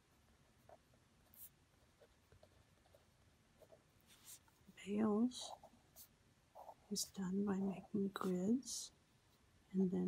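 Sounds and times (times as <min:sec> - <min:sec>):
pen scratching on paper: 0:00.6 - 0:04.6.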